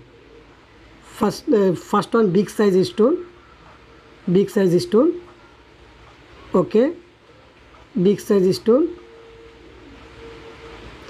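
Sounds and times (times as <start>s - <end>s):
thin steady hum: 0.0s - 11.0s.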